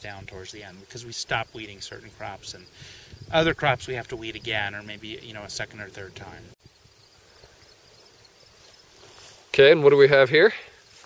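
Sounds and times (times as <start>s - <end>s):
faint outdoor field ambience: 0.0s - 11.0s
insects chirring: 0.0s - 11.0s.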